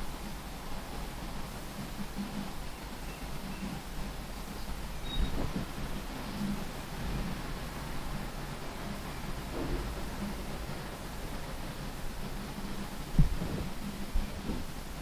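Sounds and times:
low rumble and hiss in car: 0:00.0 - 0:15.0.

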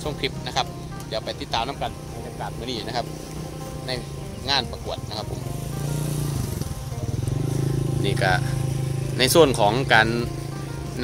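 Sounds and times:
engine running with low hum: 0:00.0 - 0:11.0.

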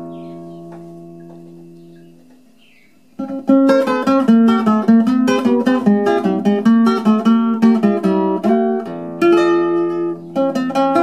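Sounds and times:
classical guitar chord ringing: 0:03.2 - 0:11.0.

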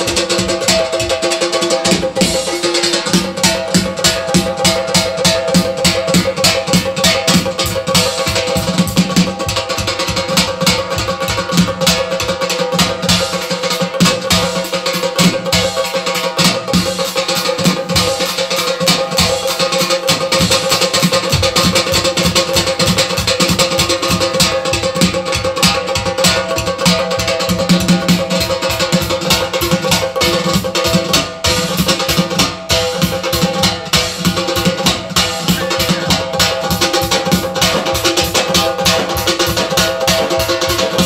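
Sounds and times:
fast driving drum beat: 0:00.0 - 0:41.0.

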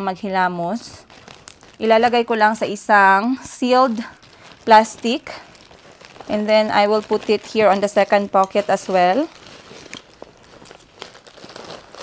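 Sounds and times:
plastic bag crinkling: 0:00.8 - 0:12.0
backpack fabric rustling: 0:03.8 - 0:12.0.

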